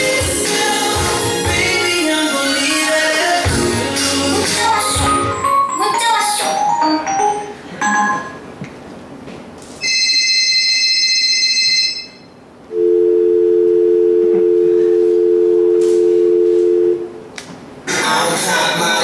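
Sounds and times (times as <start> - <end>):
high electronic beep: 4.9 - 8.4
low two-note dial tone: 12.7 - 17.2.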